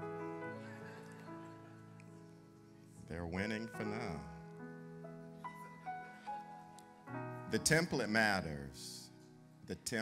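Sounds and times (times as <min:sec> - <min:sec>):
keyboard playing soft chords: 0:00.0 - 0:10.0
person preaching: 0:03.1 - 0:04.3, 0:07.5 - 0:09.0, 0:09.7 - 0:10.0.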